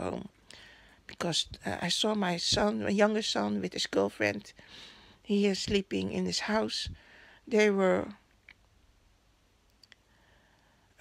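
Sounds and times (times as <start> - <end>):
faint clicks: 9.6 - 10.1.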